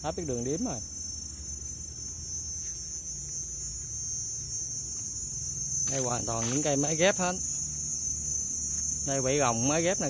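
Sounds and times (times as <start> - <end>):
high-pitched insect chorus: 0.0 - 10.0.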